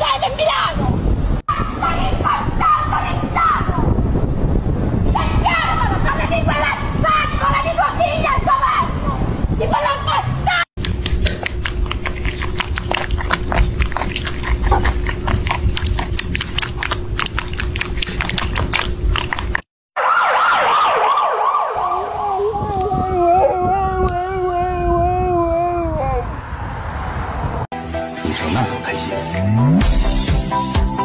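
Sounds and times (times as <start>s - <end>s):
kittens lapping milk: 10.8s - 19.7s
dog howling: 21.7s - 26.3s.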